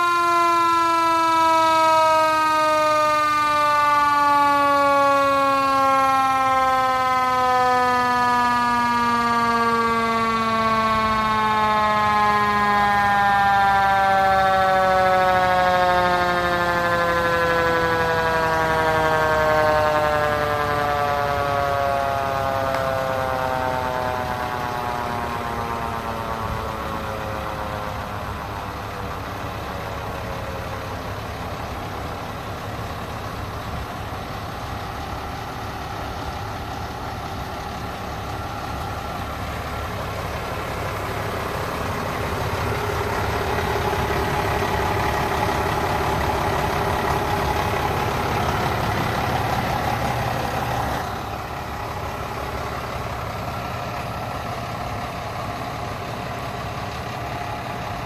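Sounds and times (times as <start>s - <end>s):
fire truck engine idling: 0.0s - 58.0s
mechanical siren winding down: 0.0s - 58.0s.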